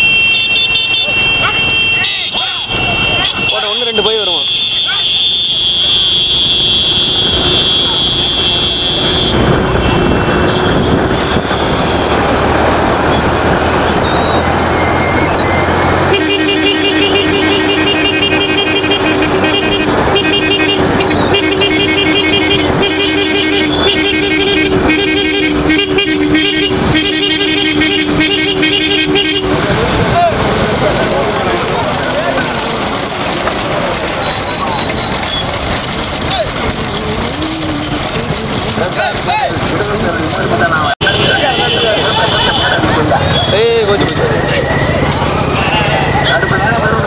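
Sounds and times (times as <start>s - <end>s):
two-tone vehicle horn blare: 0.0s - 12.4s, 14.9s - 30.0s, 40.8s - 46.5s
engine: 0.0s - 47.0s
wind: 0.0s - 47.0s.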